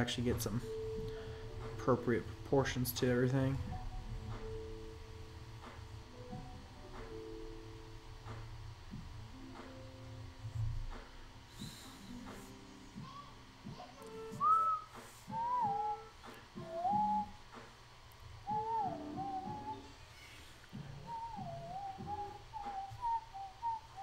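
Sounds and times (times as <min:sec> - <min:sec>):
faint background music: 0:00.0 - 0:24.0
person whistling a slow tune: 0:11.5 - 0:13.2, 0:14.0 - 0:17.7, 0:18.4 - 0:24.0.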